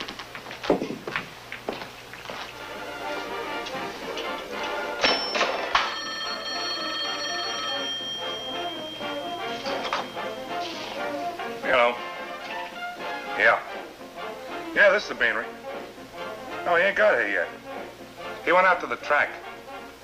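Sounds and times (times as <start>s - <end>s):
background music: 2.4s - 20.0s
telephone bell ringing: 4.9s - 11.0s.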